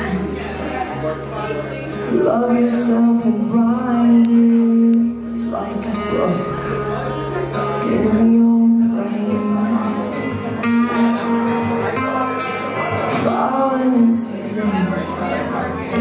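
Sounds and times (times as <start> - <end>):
bass guitar: 0.0 - 16.0
electric guitar: 0.0 - 16.0.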